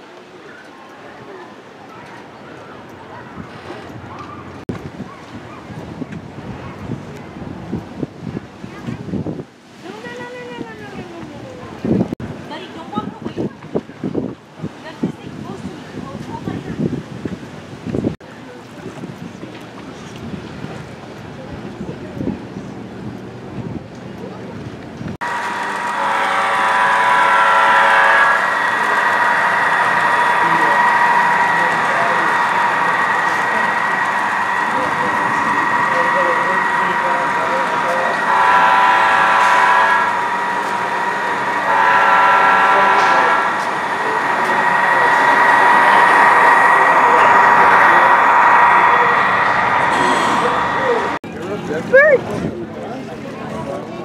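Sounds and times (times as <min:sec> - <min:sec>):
diesel train horn: 0:25.2 - 0:51.2
model locomotive hum: 0:25.2 - 0:52.2.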